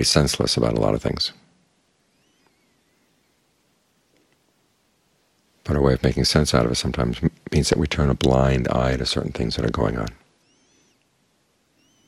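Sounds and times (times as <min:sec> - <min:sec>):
faint room hiss: 0:00.0 - 0:12.0
faint high wavering chirp: 0:01.5 - 0:03.9, 0:10.3 - 0:12.0.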